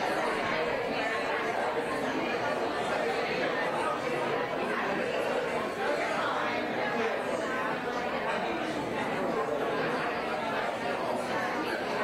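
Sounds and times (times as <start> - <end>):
murmur of overlapping voices: 0.0 - 12.0.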